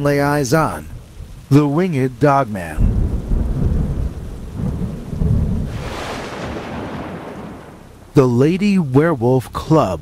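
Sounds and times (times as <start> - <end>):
rain hissing: 0.0 - 10.0
thunder rumbling: 0.2 - 8.6.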